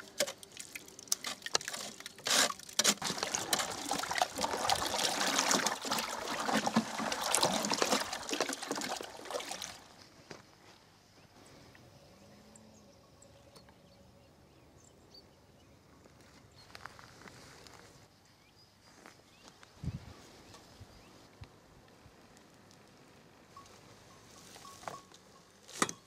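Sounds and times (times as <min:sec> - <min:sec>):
stick stirring liquid in bucket: 0:00.0 - 0:09.9
compost scraping through wire sieve: 0:01.1 - 0:09.8.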